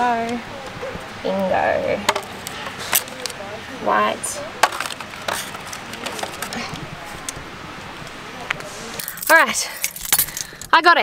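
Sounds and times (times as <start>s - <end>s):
plastic cartridges knocking: 2.0s - 3.4s, 4.6s - 6.6s.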